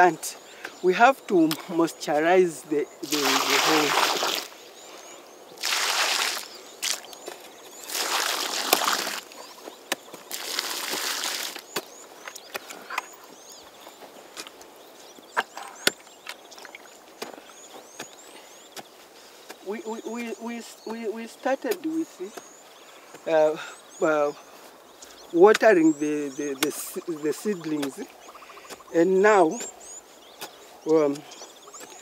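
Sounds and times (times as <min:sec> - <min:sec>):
person speaking: 0:00.0 - 0:04.5, 0:19.6 - 0:22.4, 0:23.2 - 0:24.4, 0:25.3 - 0:28.1, 0:28.9 - 0:29.7
water splashing onto soil: 0:03.0 - 0:04.6, 0:05.6 - 0:09.4, 0:10.2 - 0:11.8.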